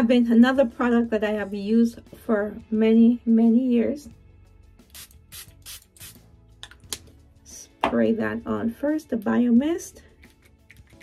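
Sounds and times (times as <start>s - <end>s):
faint background music: 0.0s - 11.0s
mist bottle spraying: 4.9s - 6.2s.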